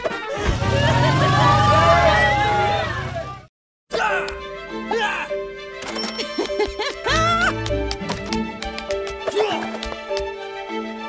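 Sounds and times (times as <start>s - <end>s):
music: 0.0s - 1.2s, 3.9s - 11.0s
cartoon car engine rumble: 0.3s - 3.5s.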